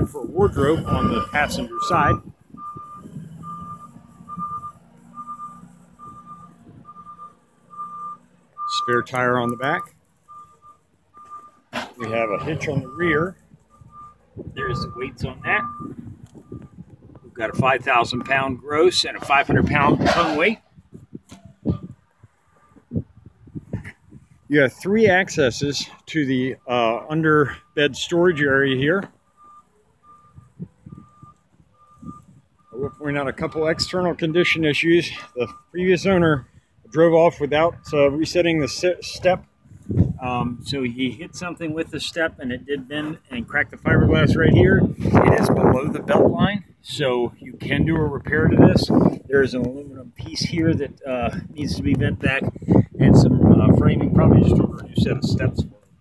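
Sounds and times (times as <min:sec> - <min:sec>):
vehicle backup alarm beeping: 0:00.0 - 0:56.0
soft low thuds: 0:39.6 - 0:40.7.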